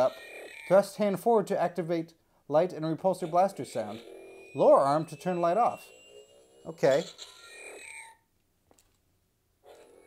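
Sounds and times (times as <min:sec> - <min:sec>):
toy electronic sound effect: 0:00.0 - 0:01.3, 0:02.8 - 0:08.3.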